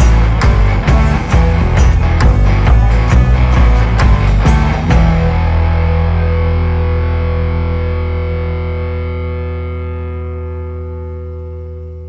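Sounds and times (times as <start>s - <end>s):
distorted electric guitar chord: 0.0s - 12.0s.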